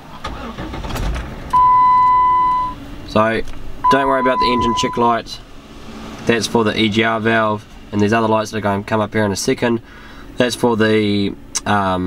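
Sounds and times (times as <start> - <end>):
engine cranking and starting: 0.0 - 5.0
dashboard warning beep: 1.5 - 2.8, 3.8 - 5.1.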